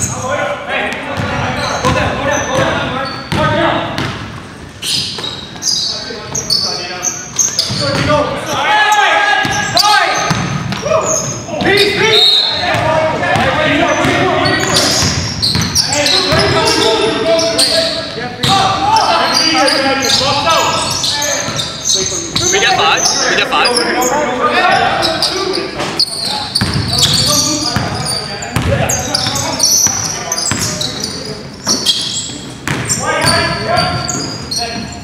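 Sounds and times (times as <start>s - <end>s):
players' voices: 0.0s - 35.0s
short high shoe squeaks: 4.8s - 8.0s, 14.4s - 18.1s, 24.8s - 35.0s.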